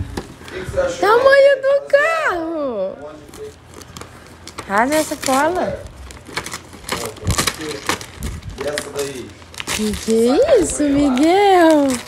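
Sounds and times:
wrapping paper tearing and crumpling: 3.0s - 12.0s.

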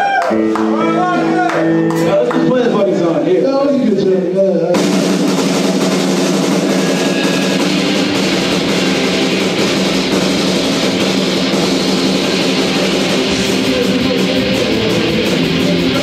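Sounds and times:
punk rock band playing: 0.0s - 3.4s, 4.7s - 16.0s.

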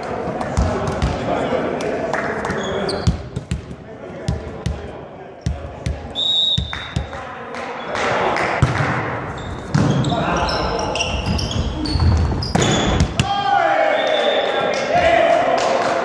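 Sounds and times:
voices echoing in hall: 0.0s - 16.0s.

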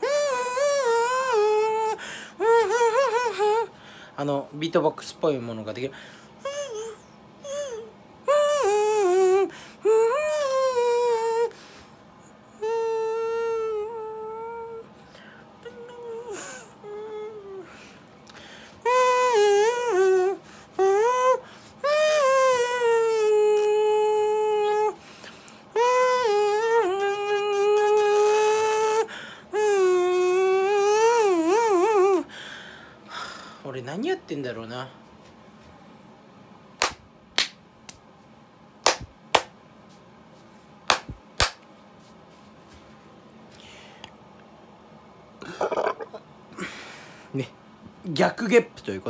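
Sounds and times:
man singing in falsetto: 0.0s - 3.8s, 6.4s - 11.6s, 12.5s - 14.9s, 15.6s - 17.8s, 18.8s - 25.1s, 25.7s - 32.3s
hand claps: 36.8s - 38.0s, 38.8s - 39.6s, 40.9s - 41.7s.

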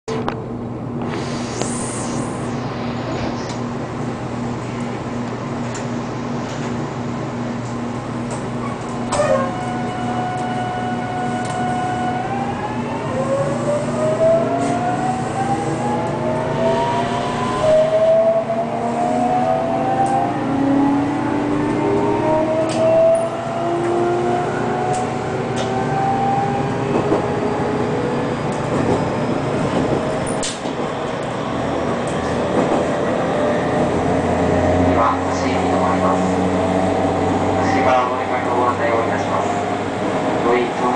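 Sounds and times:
train running noise: 0.1s - 40.9s
electric train motors whining: 8.2s - 32.4s
rail clicks: 28.5s - 31.4s, 32.0s - 33.2s.

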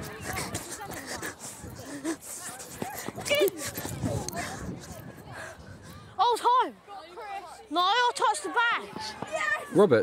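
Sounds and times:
voices calling out: 0.0s - 10.0s.

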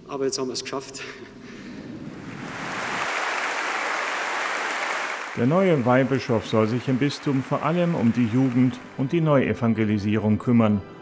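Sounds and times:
congregation applauding: 2.1s - 10.4s.

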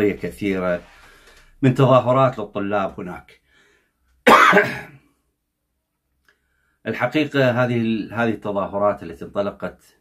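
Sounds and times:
man coughing: 4.3s - 5.0s.

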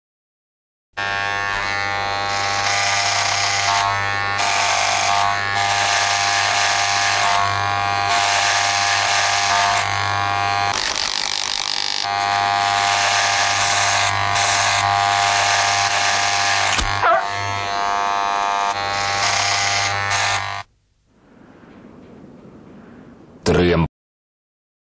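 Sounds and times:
electronic buzzing drone: 1.0s - 20.7s.

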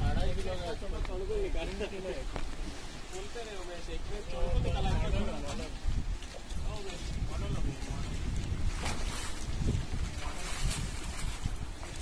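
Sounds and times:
wind buffeting microphone: 0.0s - 12.0s
scuffs or splashes: 7.9s - 12.0s.

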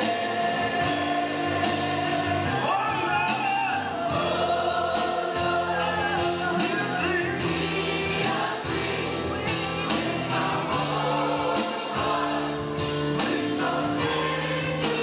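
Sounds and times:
backing instruments: 0.0s - 15.0s
group singing gospel song: 0.0s - 15.0s.

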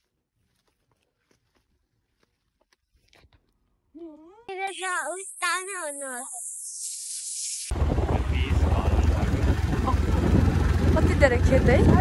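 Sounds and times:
motorbike engine and road noise: 7.7s - 12.0s
wind rumble on microphone: 7.7s - 12.0s.

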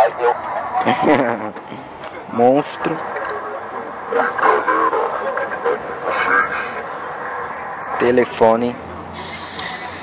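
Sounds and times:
distorted monster voice: 0.0s - 9.6s.

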